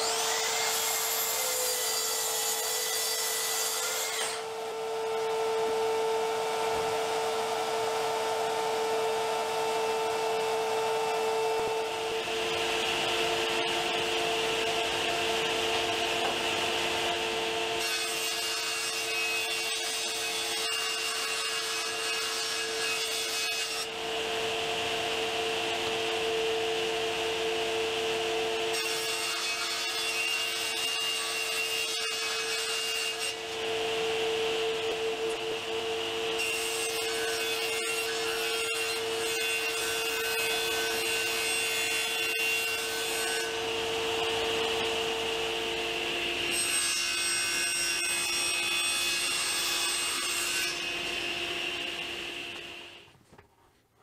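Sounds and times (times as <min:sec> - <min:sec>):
table saw cutting plywood: 0:00.0 - 0:53.1.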